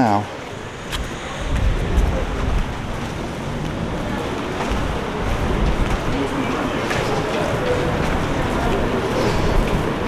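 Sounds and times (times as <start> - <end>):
street traffic: 0.0 - 10.0
wind buffeting microphone: 0.2 - 10.0.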